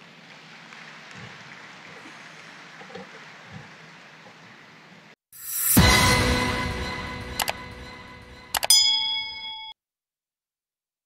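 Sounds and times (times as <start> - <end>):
bell-like notification ding: 8.5 - 9.8.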